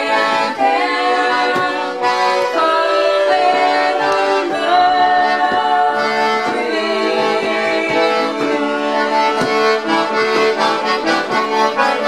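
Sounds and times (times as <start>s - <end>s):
accordion: 0.0s - 12.0s
voices singing in harmony: 0.0s - 12.0s.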